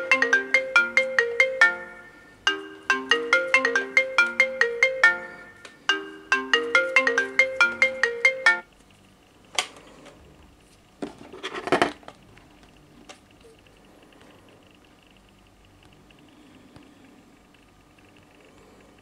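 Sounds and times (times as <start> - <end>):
phone ringtone melody: 0.0 - 8.7.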